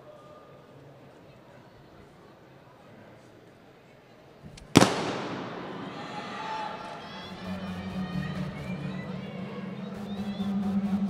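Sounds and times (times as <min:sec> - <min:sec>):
starting gun bang: 0:04.7 - 0:06.1
spectators cheering and shouting: 0:04.8 - 0:11.0.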